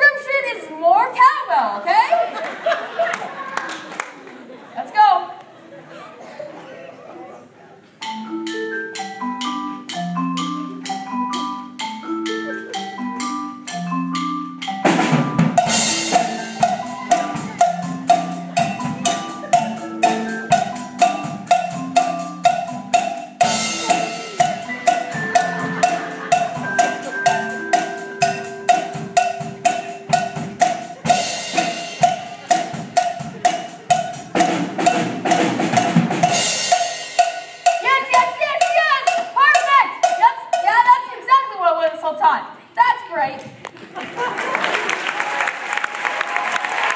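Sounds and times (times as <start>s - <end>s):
drum kit: 8.0s - 40.7s
cowbell struck on a beat: 8.0s - 40.8s
marimbas playing a riff: 8.0s - 41.0s.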